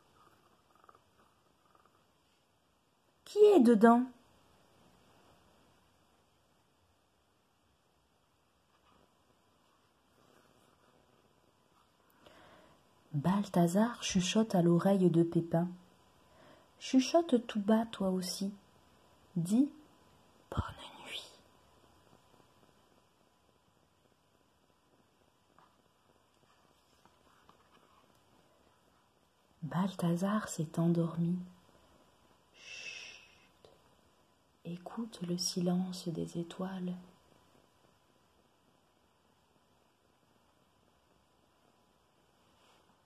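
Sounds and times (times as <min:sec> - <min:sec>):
person whispering: 0:20.5 - 0:21.5.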